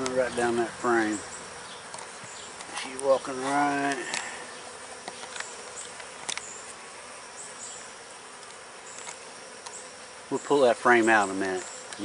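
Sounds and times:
honey bees humming: 0.0s - 12.0s.

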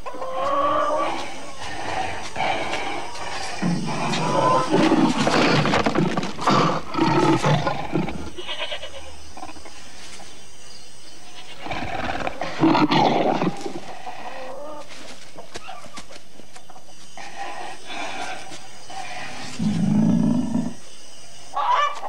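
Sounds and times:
leopard snarling: 0.3s - 10.0s, 11.4s - 15.0s, 17.2s - 20.9s.

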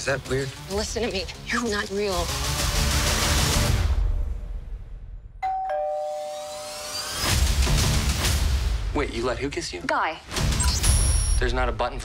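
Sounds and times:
two-note ding-dong chime: 5.4s - 7.0s.

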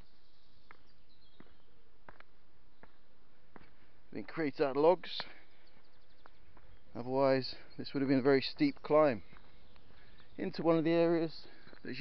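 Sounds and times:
footsteps on earth steps: 0.0s - 12.0s
faint bird chirps: 5.4s - 12.0s.

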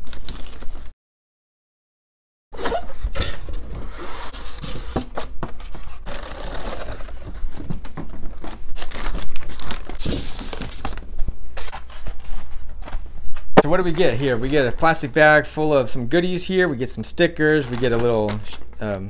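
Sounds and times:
plastic packaging crinkling: 0.0s - 0.9s, 5.9s - 13.0s.

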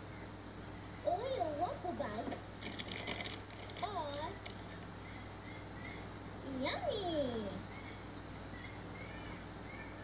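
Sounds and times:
small crackling clicks: 2.3s - 4.9s.

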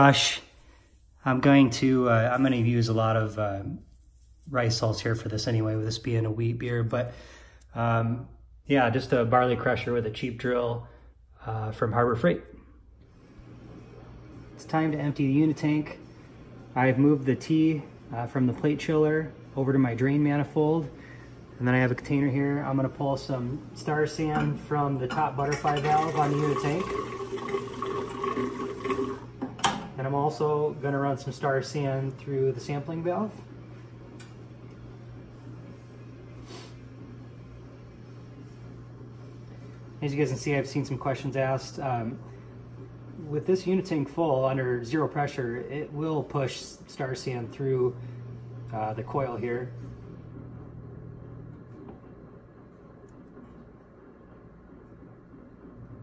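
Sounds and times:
low steady hum: 0.0s - 56.0s
liquid foaming into glass flask: 25.2s - 29.3s.

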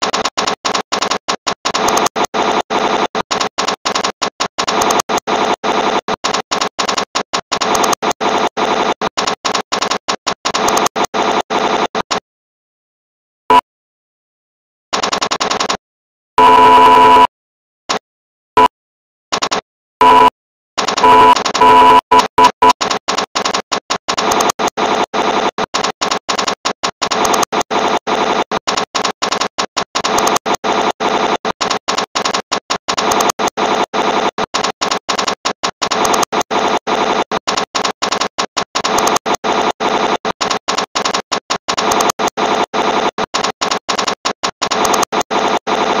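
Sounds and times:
harsh distorted stuttering remix: 0.0s - 12.2s, 20.8s - 46.0s.

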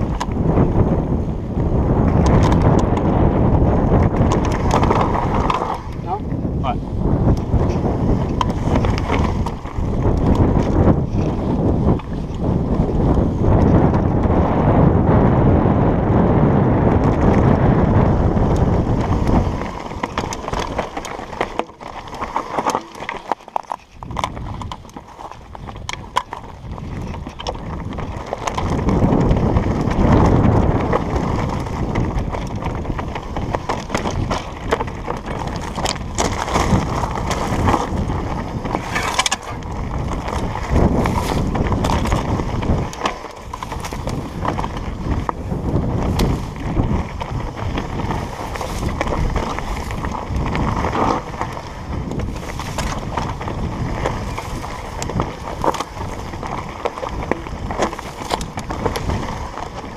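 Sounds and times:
bike rattling and clicking: 0.0s - 59.9s
wind rushing over microphone: 0.0s - 59.9s
tyres crunching over stones: 3.9s - 6.2s, 7.5s - 13.2s, 18.3s - 59.9s.

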